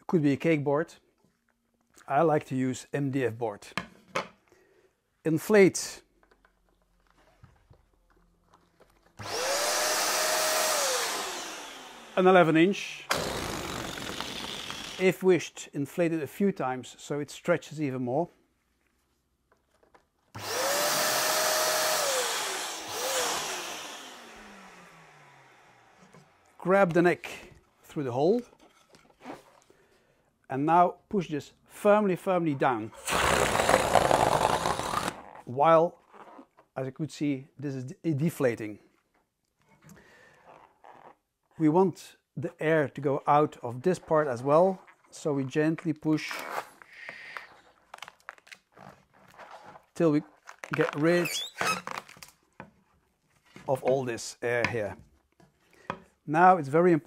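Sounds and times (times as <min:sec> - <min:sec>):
balloon inflator motor humming: 0:09.2 - 0:12.3, 0:13.0 - 0:15.0, 0:20.4 - 0:26.5, 0:33.0 - 0:35.2
balloon air hissing: 0:13.1 - 0:15.0, 0:33.0 - 0:35.2
latex balloon crinkling: 0:13.1 - 0:15.0, 0:33.0 - 0:36.8, 0:46.2 - 0:53.0.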